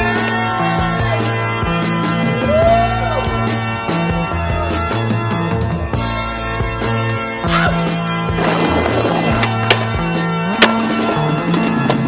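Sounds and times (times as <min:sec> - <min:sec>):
music with held notes: 0:00.0 - 0:12.0
skateboard wheels rolling on tarmac: 0:07.8 - 0:12.0
skateboard clack: 0:08.4 - 0:12.0.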